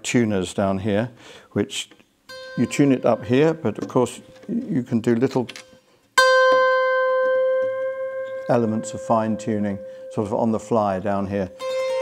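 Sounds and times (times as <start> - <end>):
zither string plucked and ringing: 2.3 - 12.0.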